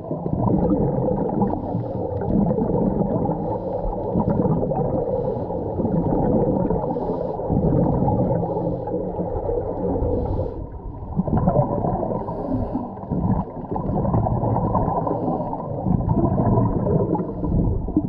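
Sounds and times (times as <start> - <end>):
regulator bubbles gurgling underwater: 0.0 - 18.0
water rushing: 0.0 - 18.0.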